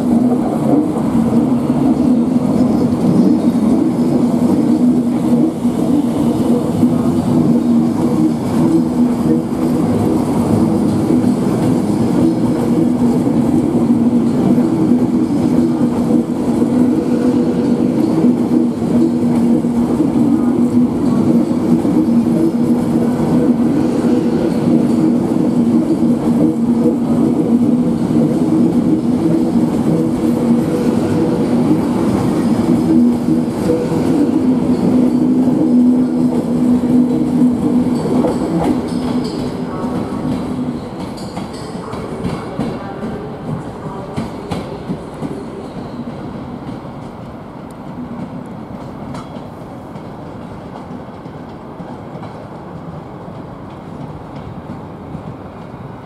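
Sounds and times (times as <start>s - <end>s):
electric train hum: 0.0s - 56.0s
train wheels rumbling: 0.0s - 56.0s.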